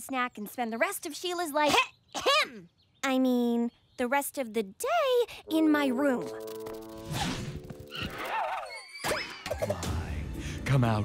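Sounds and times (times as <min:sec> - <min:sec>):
wavering high-pitched sound: 0:05.4 - 0:09.0.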